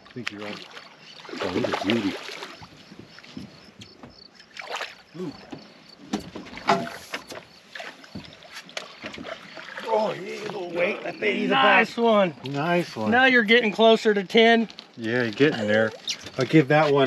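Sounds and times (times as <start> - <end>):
knocks and clatter on boat: 2.6 - 4.3, 5.3 - 9.7.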